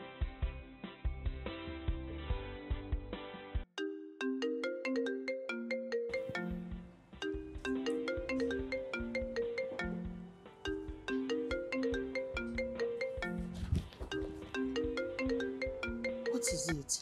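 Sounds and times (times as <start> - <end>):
phone melodic ringtone: 3.8 - 17.0.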